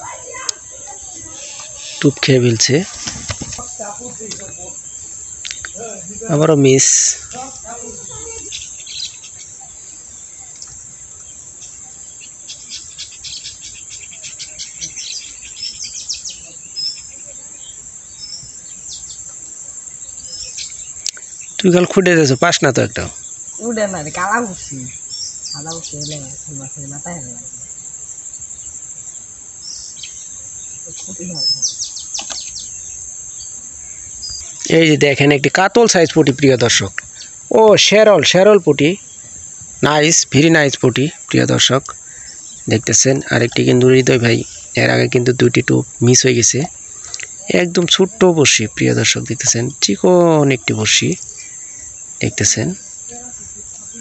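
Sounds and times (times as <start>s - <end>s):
bird chirps: 0.0s - 54.0s
insects droning: 0.0s - 54.0s.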